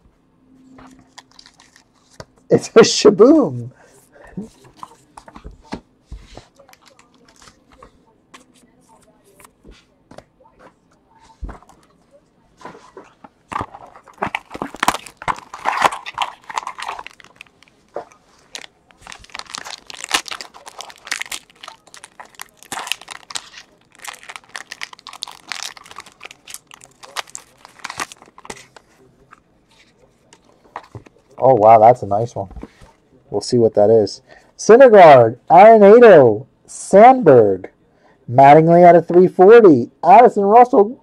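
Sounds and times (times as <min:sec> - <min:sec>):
foil wrapper crinkling and tearing: 0:01.1 - 0:02.1, 0:13.5 - 0:28.8.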